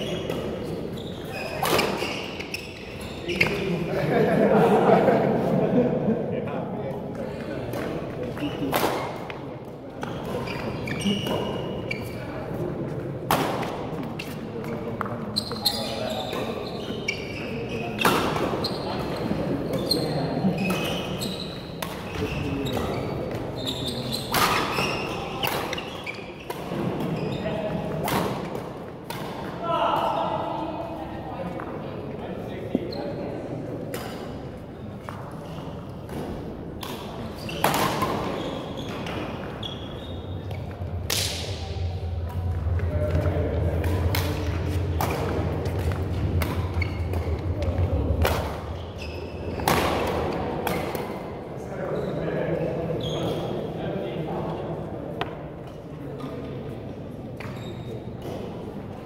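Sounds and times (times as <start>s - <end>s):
voices in a hall: 0.0s - 59.0s.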